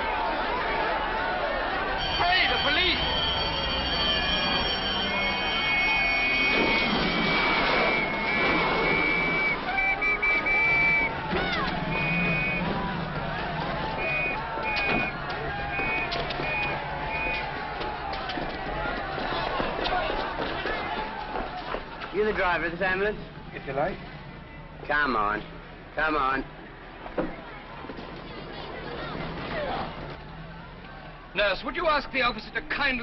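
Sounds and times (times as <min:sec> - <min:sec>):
crowd shouting: 0:00.0 - 0:23.0
shrill high note blasts: 0:01.9 - 0:12.8, 0:13.9 - 0:17.5.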